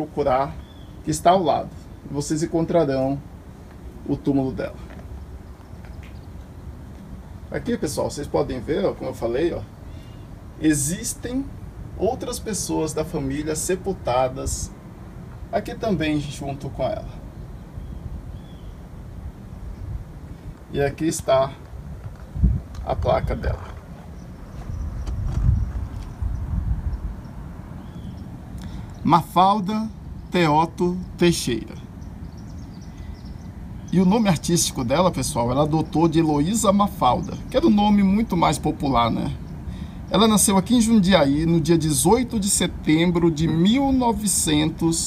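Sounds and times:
low steady rumble: 0.0s - 45.0s
low rumble on microphone: 16.8s - 29.1s.

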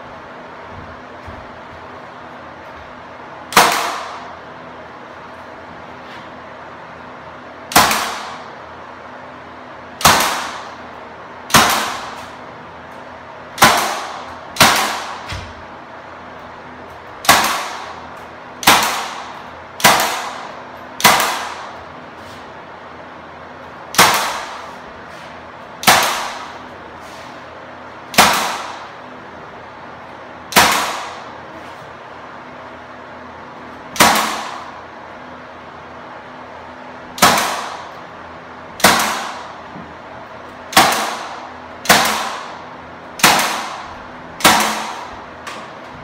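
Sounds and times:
nail gun firing into wood: 3.5s - 4.3s, 7.7s - 8.5s, 10.0s - 10.8s, 11.5s - 12.3s, 13.6s - 15.6s, 17.2s - 18.0s, 18.6s - 21.8s, 23.9s - 24.8s, 25.8s - 26.6s, 28.1s - 28.9s, 30.5s - 31.3s, 33.9s - 34.8s, 37.2s - 37.9s, 38.8s - 39.6s, 40.7s - 42.6s, 43.2s - 45.8s.

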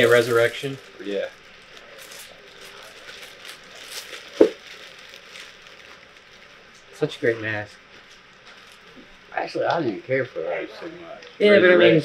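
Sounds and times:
plastic bag crinkling: 0.0s - 6.7s.

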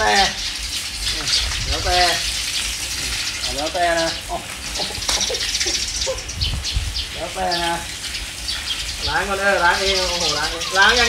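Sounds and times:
garden hose water splashing: 0.0s - 11.0s.

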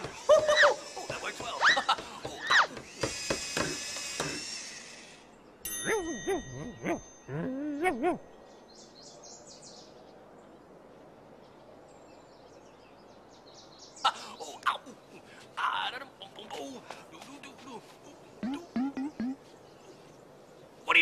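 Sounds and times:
bright chime ding: 5.7s - 7.6s
faint bird chirps: 18.4s - 20.8s.

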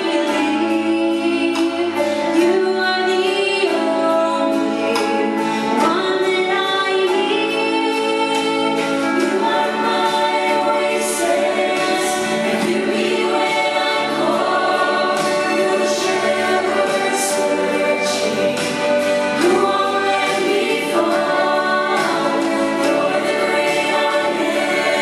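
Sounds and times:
gospel group singing in harmony: 0.0s - 25.0s.

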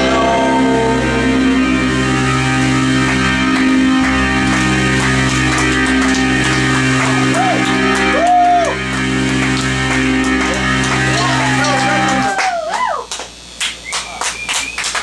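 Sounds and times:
live rock band playing: 0.0s - 12.4s
keyboard chord: 0.0s - 12.6s
electric guitar bent notes: 0.0s - 13.5s.

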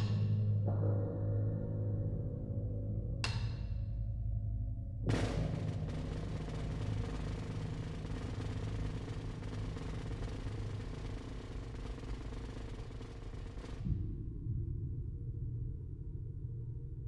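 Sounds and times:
low steady drone: 0.0s - 17.0s.

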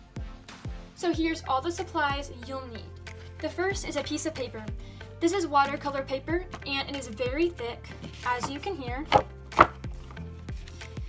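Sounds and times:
thick paper snapping: 8.4s - 9.8s.

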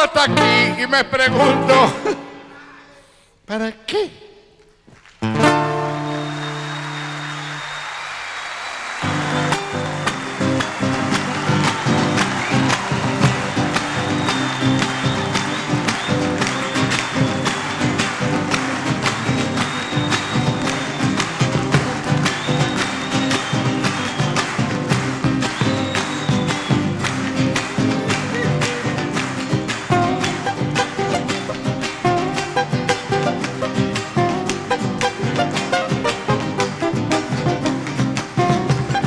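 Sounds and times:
music beneath applause: 5.2s - 39.0s
audience applause: 5.4s - 39.0s.

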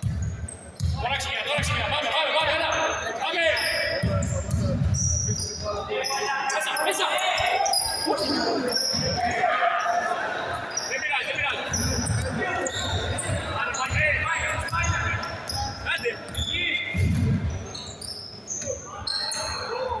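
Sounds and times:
sneakers squeaking: 0.0s - 20.0s
players shouting: 5.8s - 16.9s.

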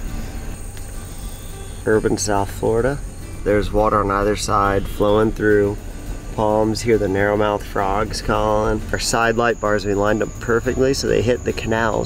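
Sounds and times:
night insects chorus: 0.0s - 12.0s
van driving slowly: 0.0s - 12.0s.

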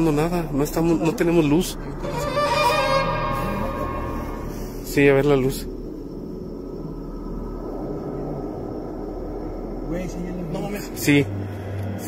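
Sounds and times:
faint hum: 0.0s - 12.0s
low rumble: 0.0s - 12.0s.

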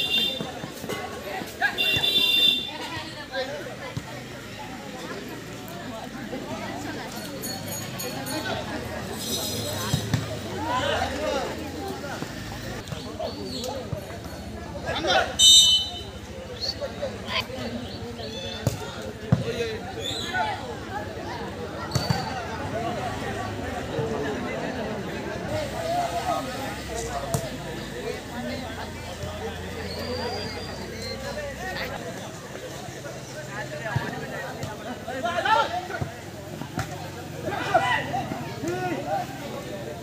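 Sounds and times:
crowd shouting: 0.0s - 4.8s, 37.4s - 40.0s.

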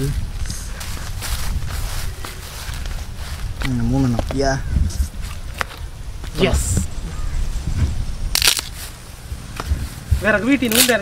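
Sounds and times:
dry plant material crunching: 8.3s - 11.0s.

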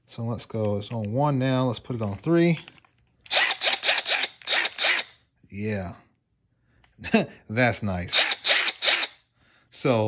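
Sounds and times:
impact wrench motor whirring: 3.2s - 5.2s, 8.1s - 9.2s.

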